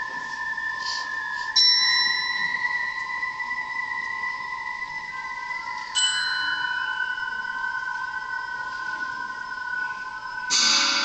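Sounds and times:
mallet percussion note ringing: 6.0s - 7.6s, 10.5s - 11.0s.

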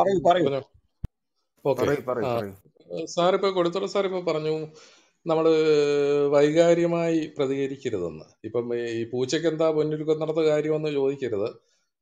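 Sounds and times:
man chanting held syllable: 1.7s - 2.6s.

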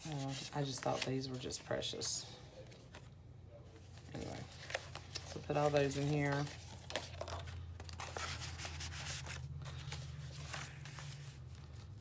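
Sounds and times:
paper rustling and rubbing: 0.0s - 1.6s, 3.8s - 12.0s
page turning: 3.9s - 12.0s.

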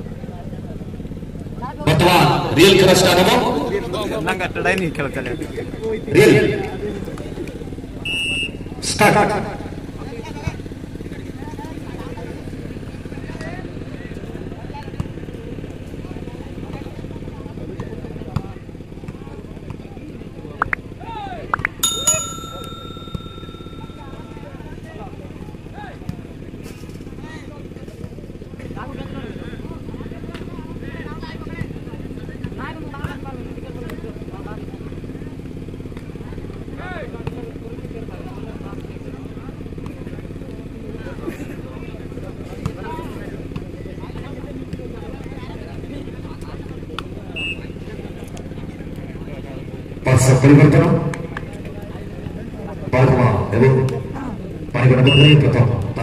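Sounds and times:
crowd chatter and calls: 0.0s - 56.0s.

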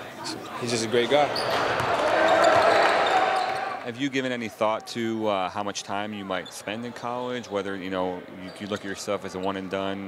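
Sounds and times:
reverberant crowd hubbub: 0.0s - 10.0s.

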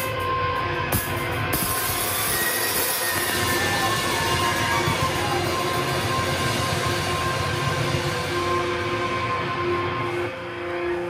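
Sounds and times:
electric guitar feedback: 0.0s - 11.0s
wavering feedback tones: 0.0s - 11.0s.

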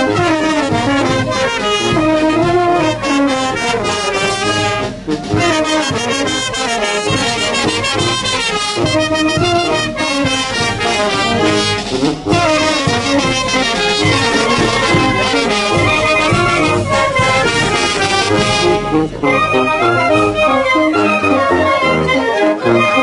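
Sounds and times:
steady drum beat: 0.0s - 21.4s
brass band playing dance music: 0.0s - 23.0s.

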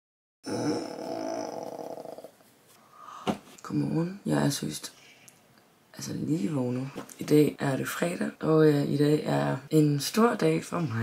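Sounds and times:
woman groaning yawn: 0.4s - 2.3s.

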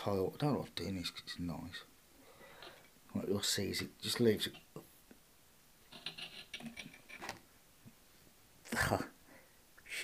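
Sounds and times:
mineral scraping on ceramic tile: 2.5s - 2.9s, 5.9s - 7.4s.

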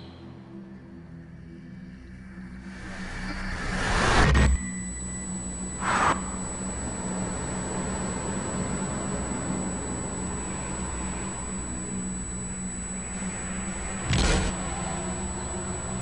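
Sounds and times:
constant low hum: 1.1s - 16.0s.

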